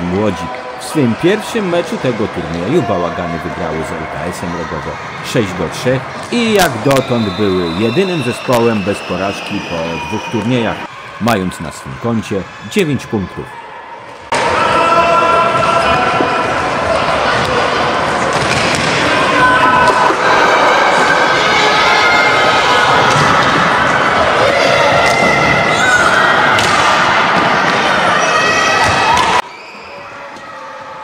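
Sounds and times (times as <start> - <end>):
young players shouting: 13.2 - 18.2, 19.0 - 29.4.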